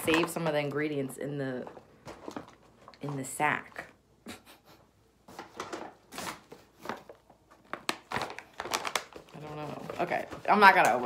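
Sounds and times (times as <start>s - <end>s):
paper bag rustling: 5.3s - 11.0s.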